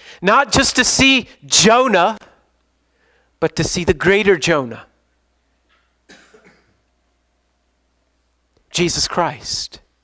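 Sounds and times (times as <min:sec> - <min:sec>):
person coughing: 0:06.0 - 0:06.8.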